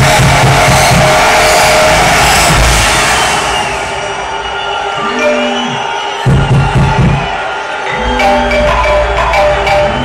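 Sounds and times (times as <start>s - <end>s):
pulsing chopped bass line: 0.0s - 3.0s
electronic dance music: 0.0s - 10.0s.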